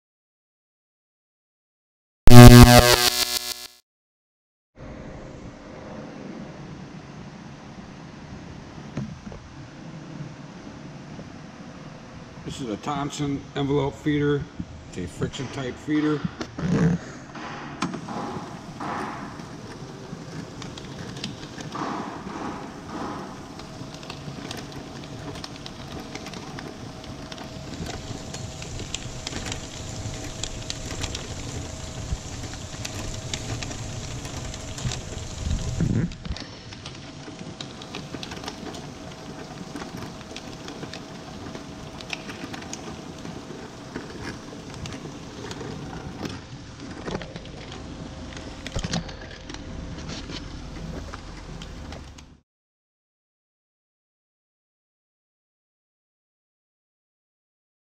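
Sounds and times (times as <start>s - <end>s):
envelope feeder motor hum: 18.0s - 36.0s, 36.6s - 48.8s.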